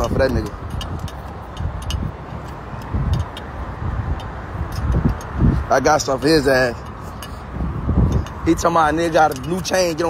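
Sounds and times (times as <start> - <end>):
phone microphone handling rumble: 0.0 - 10.0.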